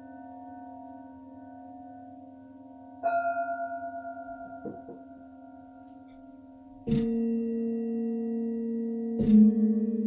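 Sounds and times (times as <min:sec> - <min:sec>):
hum of other bowls ringing: 0:00.0 - 0:10.0
singing bowl ringing: 0:00.0 - 0:10.0.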